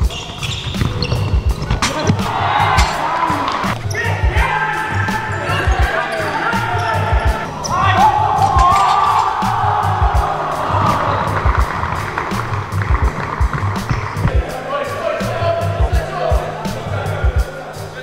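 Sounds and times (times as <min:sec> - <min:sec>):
backing music with beat and bass: 0:00.0 - 0:18.0.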